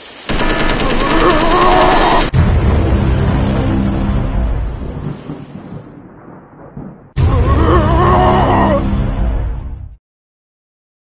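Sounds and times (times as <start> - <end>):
machine-gun fire: 0.3 - 2.4.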